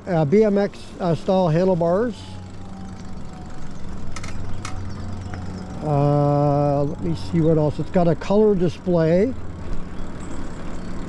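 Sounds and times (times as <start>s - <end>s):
road and wind noise: 0.0s - 11.0s
electric bike motor hum: 0.2s - 11.0s.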